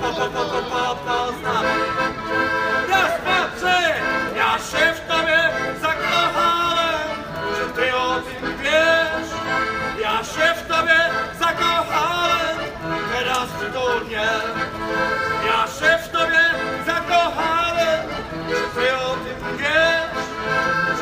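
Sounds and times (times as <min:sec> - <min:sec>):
piano accordion: 0:00.0 - 0:21.0
man singing wordless syllables: 0:02.8 - 0:21.0.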